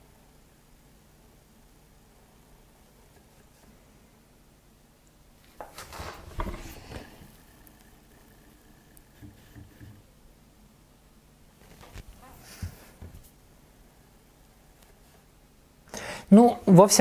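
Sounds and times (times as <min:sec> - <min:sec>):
clothing rustling on microphone: 0:05.4 - 0:07.4, 0:11.6 - 0:13.4.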